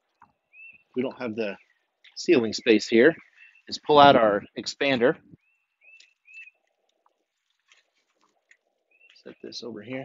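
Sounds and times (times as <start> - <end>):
bird chirping: 0.0 - 7.2, 8.3 - 10.0
faint clicks: 5.9 - 9.3.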